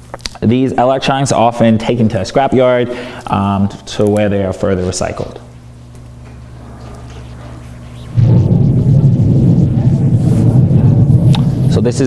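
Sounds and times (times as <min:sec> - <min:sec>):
loud low rumble: 0:06.5 - 0:12.0.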